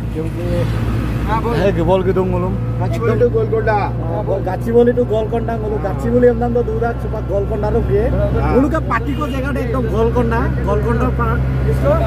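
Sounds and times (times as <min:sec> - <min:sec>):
auto-rickshaw engine droning: 0:00.0 - 0:12.0.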